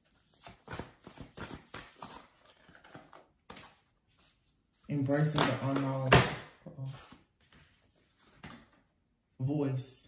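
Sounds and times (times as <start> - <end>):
cards being shuffled: 0.1 - 3.8.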